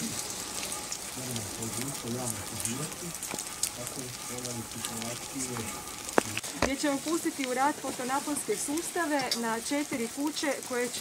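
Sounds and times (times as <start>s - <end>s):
rain pattering on umbrellas: 0.0s - 11.0s.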